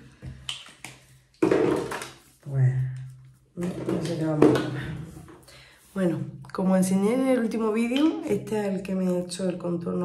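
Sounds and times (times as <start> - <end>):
person speaking: 2.4 - 10.0.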